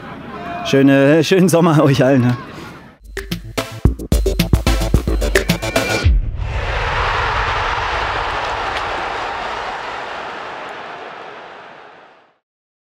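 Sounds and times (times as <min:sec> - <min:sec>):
rushing whoosh: 0:06.0 - 0:09.9.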